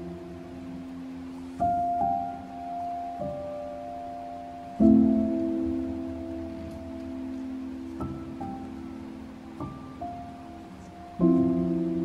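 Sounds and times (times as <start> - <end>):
soft solo piano: 0.0 - 12.0.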